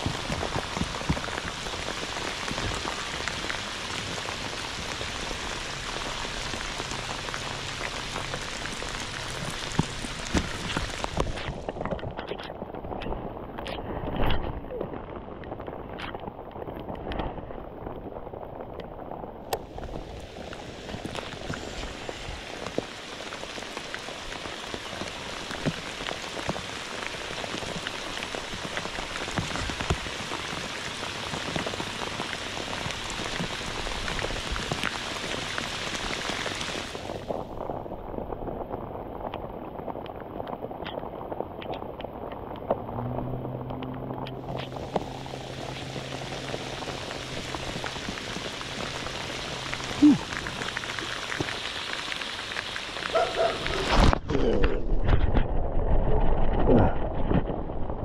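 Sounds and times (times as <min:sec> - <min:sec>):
heavy rain on water and boat: 0:00.0 - 0:58.0
low steady hum: 0:41.6 - 0:51.5.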